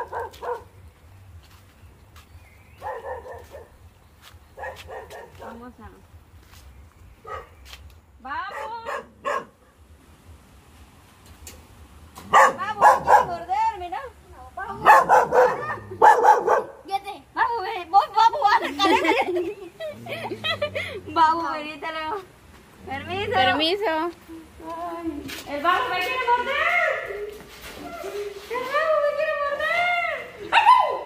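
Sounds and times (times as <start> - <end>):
dog barking: 0.0 - 0.7, 2.8 - 3.8, 4.6 - 5.6, 7.2 - 7.6, 8.5 - 9.6, 12.2 - 13.5, 14.8 - 16.9
people calling out: 25.8 - 31.0.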